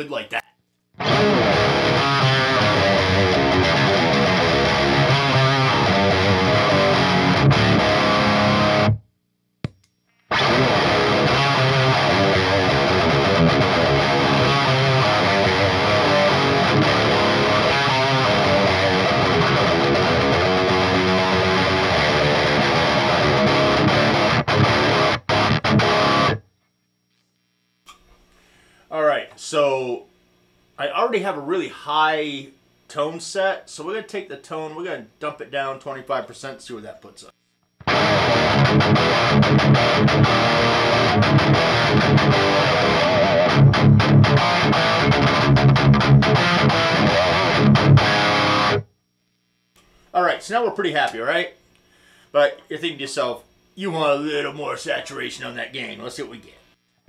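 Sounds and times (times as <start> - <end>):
distorted electric guitar riffing: 1.0 - 9.0, 10.3 - 26.4, 37.8 - 48.9.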